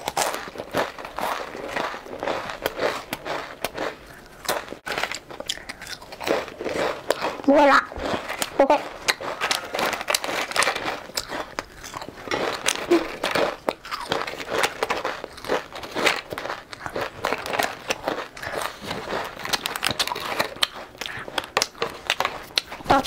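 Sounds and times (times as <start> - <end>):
crunching and chewing snack: 0.0 - 23.0.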